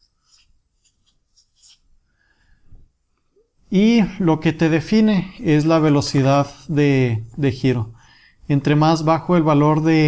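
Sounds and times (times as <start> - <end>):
marker pen scratching on paper: 0.0 - 2.0.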